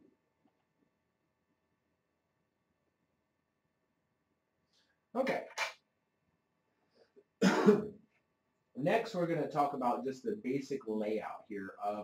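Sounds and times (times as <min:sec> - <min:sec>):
person speaking: 0:05.1 - 0:05.8, 0:08.7 - 0:12.0
person coughing: 0:07.4 - 0:08.0.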